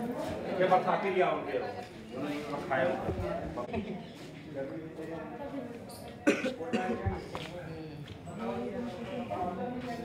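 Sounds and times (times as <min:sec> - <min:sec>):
people talking: 0:00.0 - 0:10.0
person coughing: 0:06.2 - 0:07.0.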